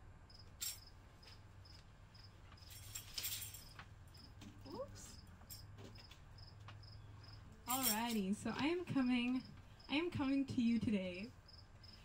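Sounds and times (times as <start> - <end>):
cricket chirping: 0.3 - 2.8, 3.6 - 4.4, 5.1 - 7.4, 11.2 - 12.0
woman speaking: 4.6 - 5.2, 7.7 - 11.4.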